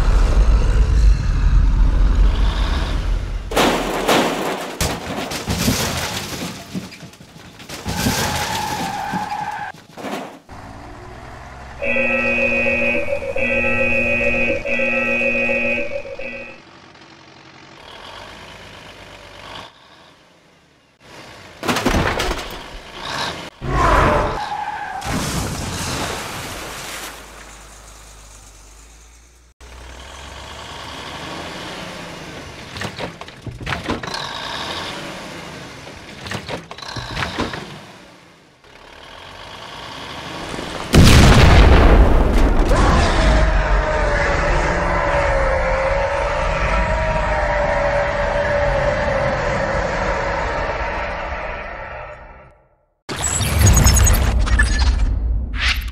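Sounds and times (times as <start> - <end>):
horn blasts: 11.7 - 16.6
loud boom sound effect: 40.9 - 44.4.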